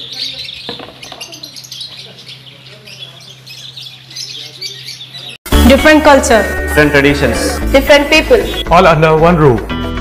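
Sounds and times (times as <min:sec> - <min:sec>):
birds chirping: 0:00.0 - 0:09.2.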